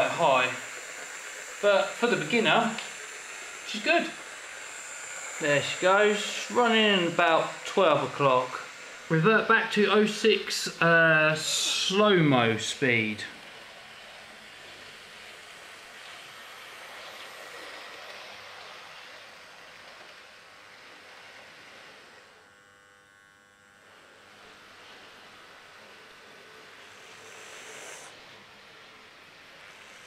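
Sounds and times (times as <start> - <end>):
model train motor whirring: 0.0 - 30.0.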